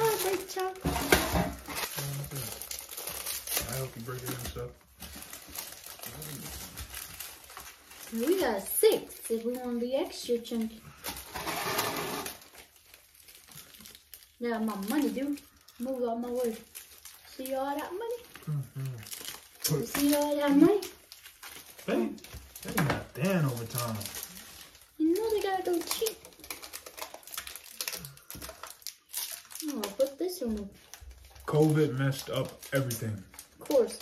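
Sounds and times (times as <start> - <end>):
chocolate wrappers crinkling: 0.0 - 34.0.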